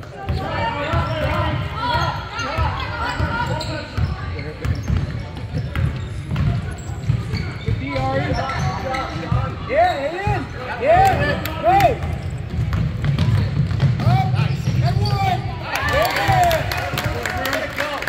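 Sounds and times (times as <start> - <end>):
sneakers squeaking: 0.0 - 16.4
people calling out and talking: 0.0 - 18.0
basketball dribbling on gym floor: 4.0 - 9.6, 12.2 - 15.2.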